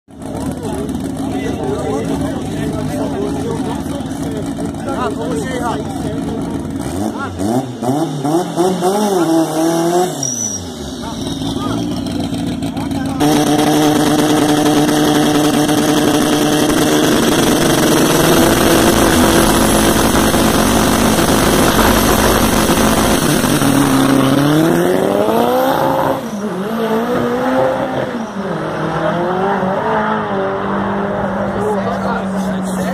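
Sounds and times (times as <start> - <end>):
car engine revving: 0.1 - 32.9
tyre noise during burnout: 6.2 - 28.2.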